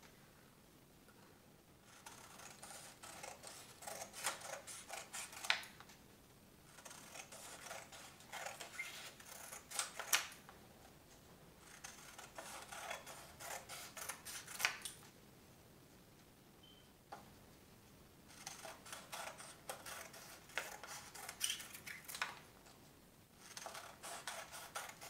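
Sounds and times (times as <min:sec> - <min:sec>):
scissors snipping paper: 0:01.9 - 0:05.8, 0:06.7 - 0:10.3, 0:11.7 - 0:15.0, 0:18.3 - 0:22.3, 0:23.4 - 0:25.0.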